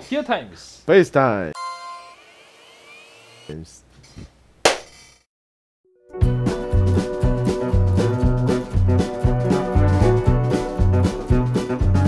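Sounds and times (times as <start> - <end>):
loud sharp hand clap: 4.6 - 5.0.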